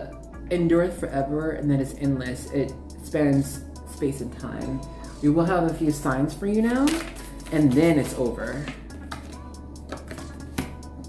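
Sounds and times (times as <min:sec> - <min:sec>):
quiet background music: 0:00.0 - 0:11.0
cards clicking and slapping: 0:06.8 - 0:10.8.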